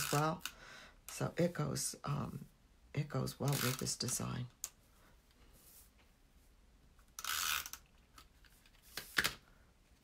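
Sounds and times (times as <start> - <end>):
tape runner ratcheting whirr: 7.2 - 7.9.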